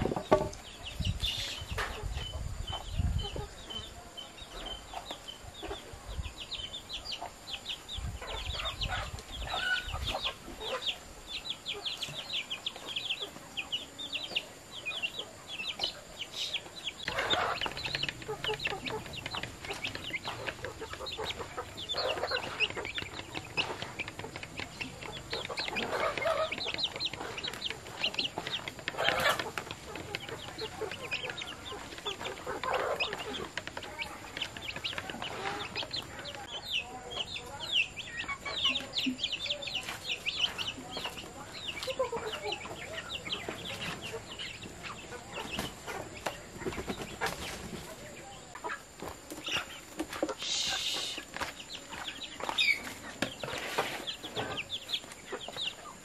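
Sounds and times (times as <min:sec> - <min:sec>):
chickens clucking: 0:00.0 - 0:56.0
chicks peeping: 0:00.0 - 0:56.0.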